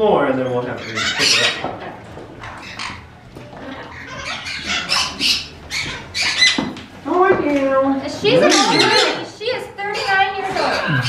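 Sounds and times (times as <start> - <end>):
parrots squawking: 0.0 - 7.0, 8.0 - 11.0.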